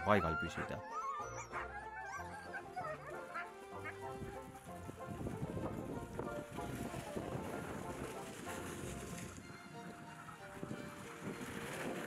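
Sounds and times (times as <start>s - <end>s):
huskies giving high-pitched cries: 0.0s - 4.5s
background music: 0.0s - 12.0s.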